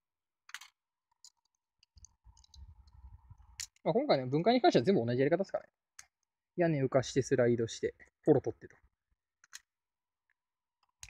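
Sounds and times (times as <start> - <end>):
plastic clicks and handling noise: 0.5 - 3.8, 9.4 - 9.7.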